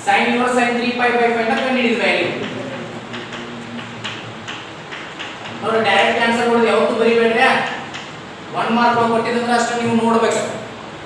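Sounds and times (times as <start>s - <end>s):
chalk tapping on chalkboard: 1.4s - 5.6s.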